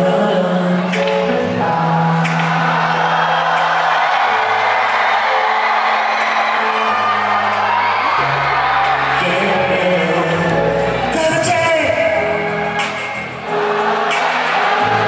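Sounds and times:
man singing: 0.0 - 3.5, 9.1 - 13.8
live pop song over sound system: 0.0 - 15.0
crowd cheering: 0.6 - 15.0.

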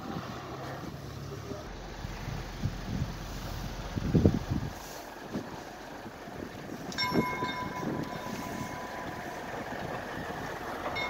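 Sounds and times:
distant motor car approaching: 0.0 - 11.0
low rumble: 1.6 - 11.0
steady high-pitched tone: 7.0 - 9.7.

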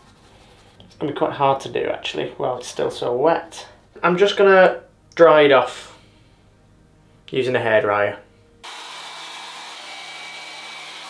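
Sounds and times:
hairdryer blowing: 8.6 - 11.0.

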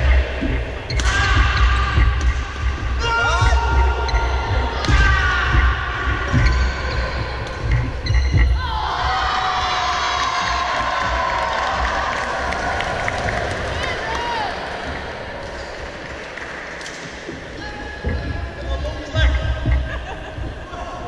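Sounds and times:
trainers squeaking on floor: 0.0 - 11.3
footfalls on hall floor: 0.0 - 21.0.

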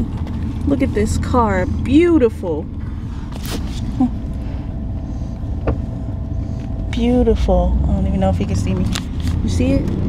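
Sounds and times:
car exhaust rumble: 0.0 - 10.0
traffic noise: 0.0 - 10.0.

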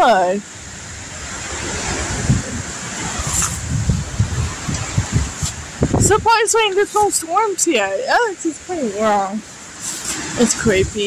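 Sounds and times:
strong wind through trees: 0.0 - 11.0
wind buffeting microphone: 0.0 - 11.0.

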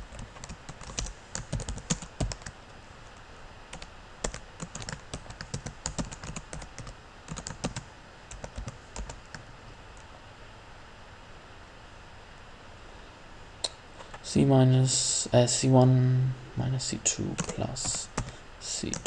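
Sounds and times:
computer keyboard typing: 0.1 - 2.5, 3.7 - 9.4, 17.3 - 19.0.

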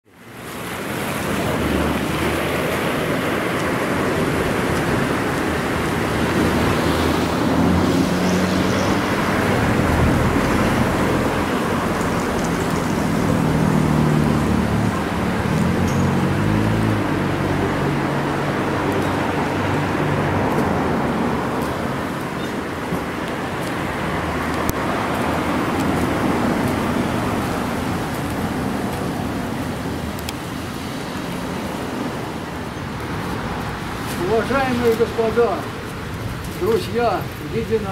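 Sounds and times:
road traffic noise: 0.0 - 37.9.

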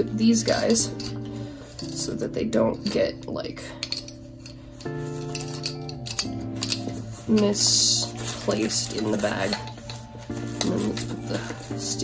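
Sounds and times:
background music of held chords: 0.0 - 12.0
pens clicking and tapping: 0.0 - 12.0.

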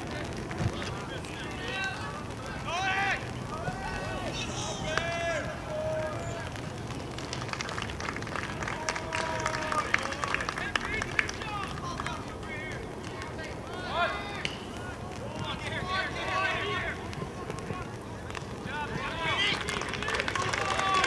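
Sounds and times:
players calling and shouting: 0.0 - 21.0.

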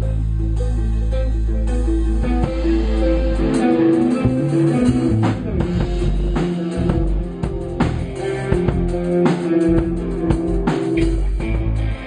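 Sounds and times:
electric guitar through amplifier: 0.0 - 12.0.

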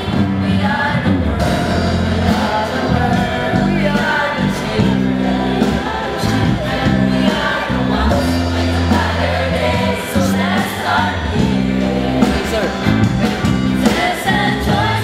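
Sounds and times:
group singing together: 0.0 - 15.0
live band playing: 0.0 - 15.0.

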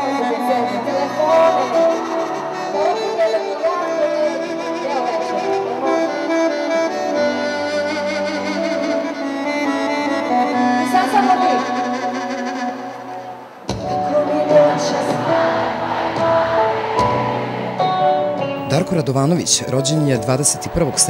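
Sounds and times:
slow live band music: 0.0 - 21.0.

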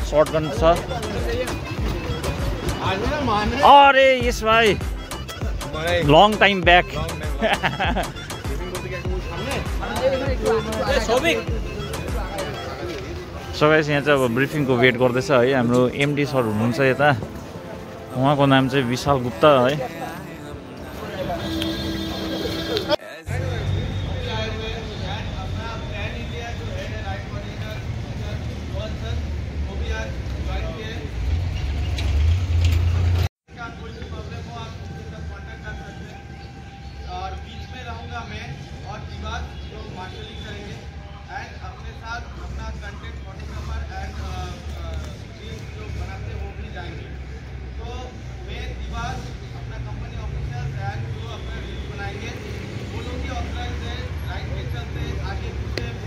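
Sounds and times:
people talking: 0.0 - 4.9, 5.5 - 31.1
indistinct voices: 8.3 - 29.1.

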